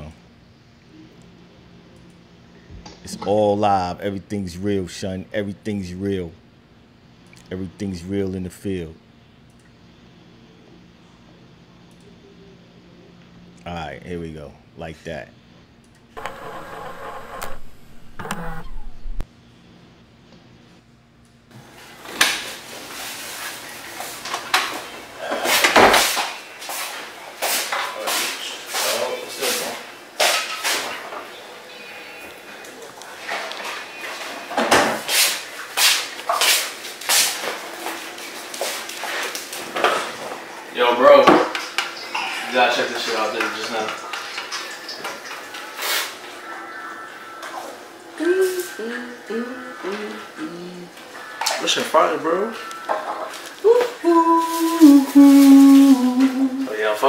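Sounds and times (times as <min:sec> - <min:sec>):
steady noise: 0:16.2 - 0:19.3.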